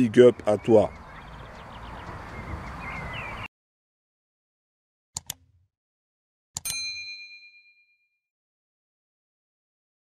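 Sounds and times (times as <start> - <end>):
bright bell ding: 6.6 - 8.1.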